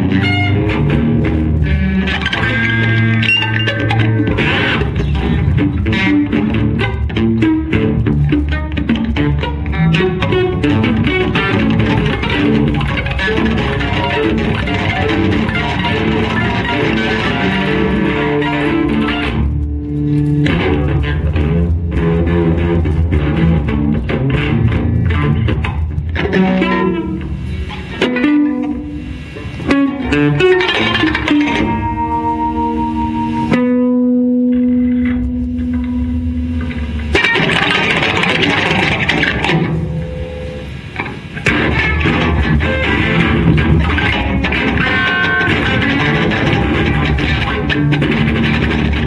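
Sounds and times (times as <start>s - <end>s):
electric guitars playing: 0.0s - 49.0s.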